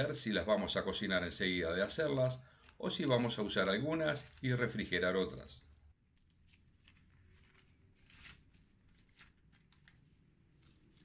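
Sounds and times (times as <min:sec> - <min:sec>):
waxed paper rustling: 0:01.5 - 0:11.0.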